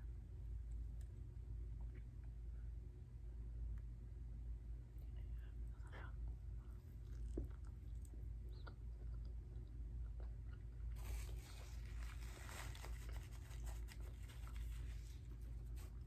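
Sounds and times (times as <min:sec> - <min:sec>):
low hum: 0:00.0 - 0:16.0
crunchy chewing: 0:06.6 - 0:16.0.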